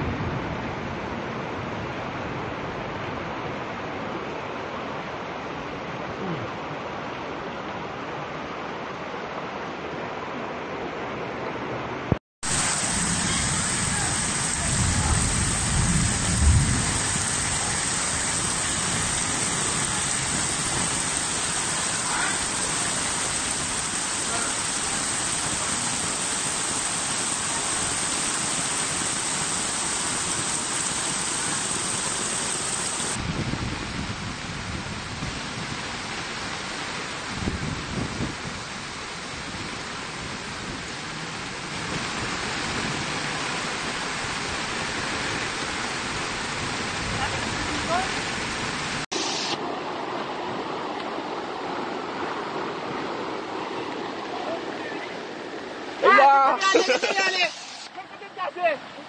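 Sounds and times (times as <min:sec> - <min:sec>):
heavy rain downpour: 0:00.0 - 0:10.6, 0:11.2 - 0:59.0
floodwater rushing: 0:12.4 - 0:59.0.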